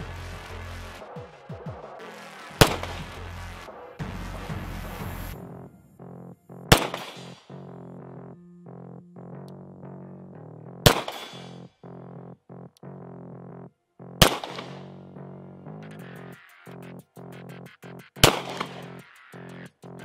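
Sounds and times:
synthesizer background music: 0.0s - 20.0s
pistol shots: 6.7s - 7.5s, 10.8s - 11.6s, 14.2s - 14.9s, 18.2s - 18.9s.

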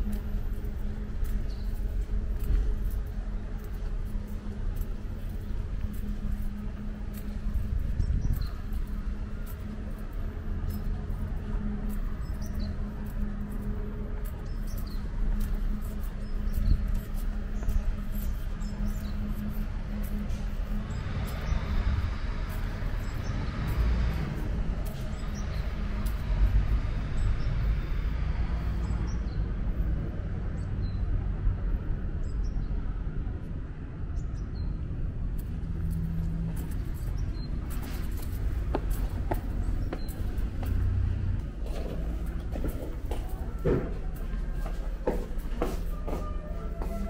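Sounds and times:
distant traffic rumble: 0.0s - 47.0s.

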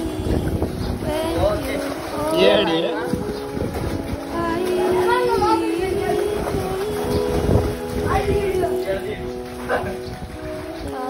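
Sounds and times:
water sloshing and splashing: 0.0s - 11.0s
wind rumble on microphone: 0.0s - 11.0s.

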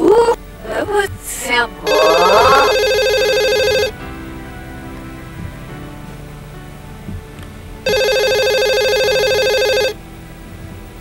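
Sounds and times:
telephone ringing: 1.9s - 4.0s, 7.8s - 10.0s.

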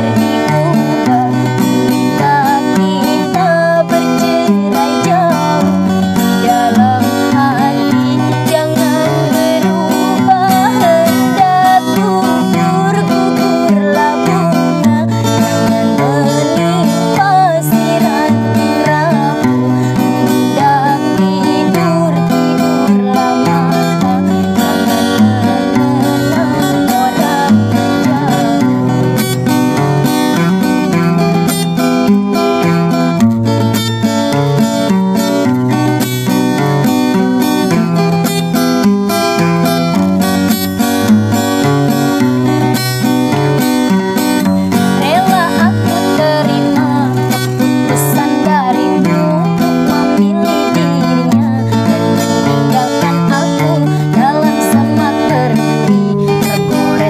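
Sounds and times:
woman singing: 0.0s - 31.6s, 41.6s - 57.0s
acoustic guitar chords: 0.0s - 57.0s.

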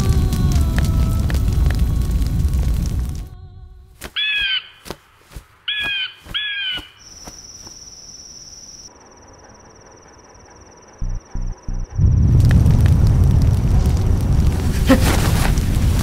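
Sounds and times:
crow cawing: 4.1s - 5.0s, 5.7s - 7.0s
steady high-pitched tone: 8.5s - 12.3s
low thumps: 11.0s - 16.0s.

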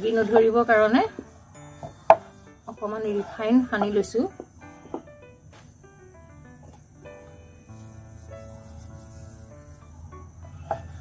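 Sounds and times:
hand rubbing oil on wood: 0.0s - 5.7s, 6.6s - 11.0s
knock on wooden board: 3.8s - 5.2s.

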